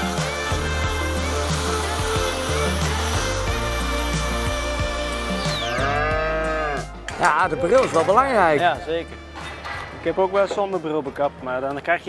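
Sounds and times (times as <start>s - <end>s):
background music: 0.0s - 12.0s
cow mooing: 5.6s - 7.0s.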